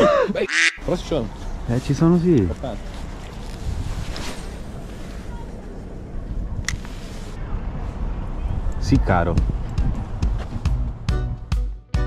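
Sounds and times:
wind buffeting microphone: 7.4 - 11.1.

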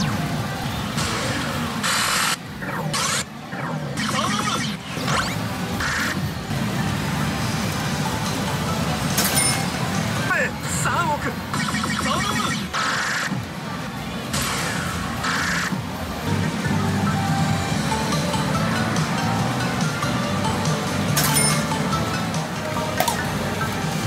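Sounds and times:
pachinko machine electronic music: 0.0 - 24.0.

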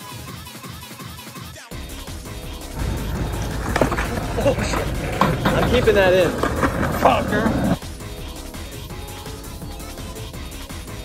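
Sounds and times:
skateboard wheels rolling on concrete: 1.8 - 10.2
skateboard knock: 2.8 - 7.8.

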